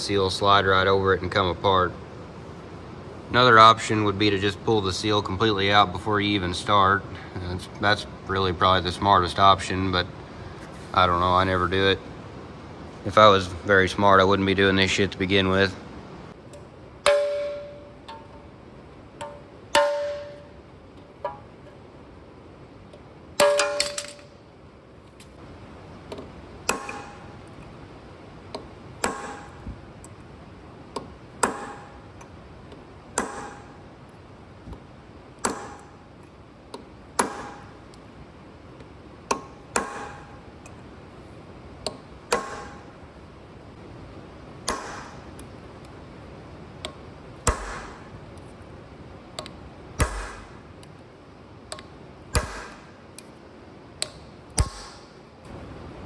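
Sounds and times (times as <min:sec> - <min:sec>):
hammer striking steel chisel: 0:16.5 - 0:18.5, 0:19.2 - 0:20.6, 0:23.4 - 0:24.3, 0:26.1 - 0:27.4, 0:28.5 - 0:29.7, 0:31.0 - 0:32.1, 0:33.2 - 0:33.8, 0:35.4 - 0:36.0, 0:36.7 - 0:37.8, 0:39.3 - 0:40.4, 0:41.8 - 0:42.9, 0:44.6 - 0:45.4, 0:46.8 - 0:48.1, 0:49.4 - 0:50.6, 0:51.7 - 0:52.9, 0:54.0 - 0:55.1.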